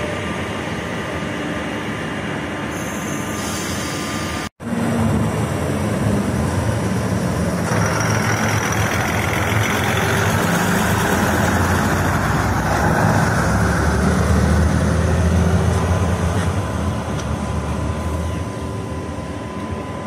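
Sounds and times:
diesel railcar engine running: 0.0s - 20.0s
wheel and rail noise: 0.0s - 20.0s.

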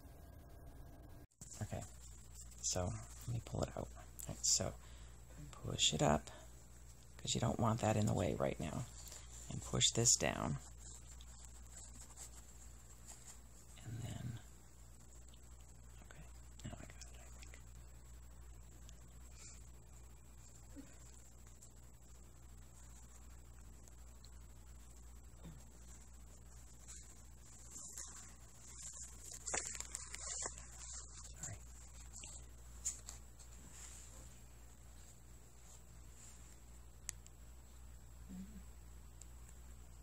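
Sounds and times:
low steady hum: 0.0s - 40.0s.

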